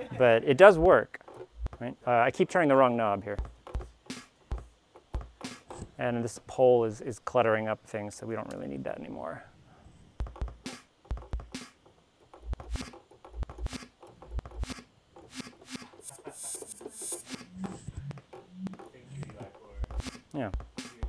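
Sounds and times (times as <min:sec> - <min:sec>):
kick drum thumps: 0:03.3 - 0:05.9, 0:10.2 - 0:11.8, 0:12.4 - 0:14.7, 0:19.4 - 0:21.0
snare and hi-hat hits: 0:03.7 - 0:04.6, 0:05.4 - 0:05.8, 0:10.6 - 0:11.8, 0:19.9 - 0:21.0
long hiss: 0:15.7 - 0:17.4.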